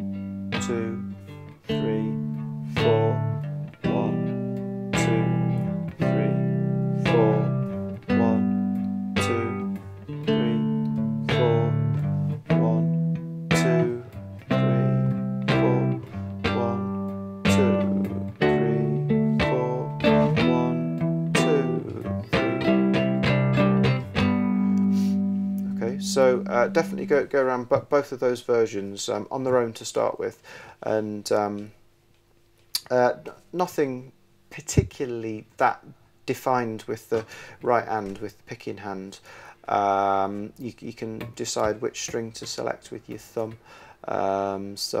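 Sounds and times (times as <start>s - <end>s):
strummed cigar box guitar: 0.0s - 27.9s, 40.2s - 43.7s.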